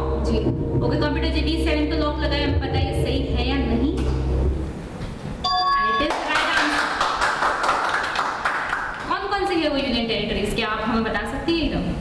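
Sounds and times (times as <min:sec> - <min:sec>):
hands clapping: 0:06.0 - 0:09.1.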